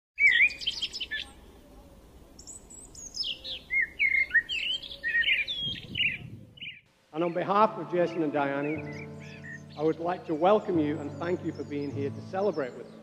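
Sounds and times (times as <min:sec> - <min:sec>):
songbirds chirping and singing: 0:00.2 - 0:13.0.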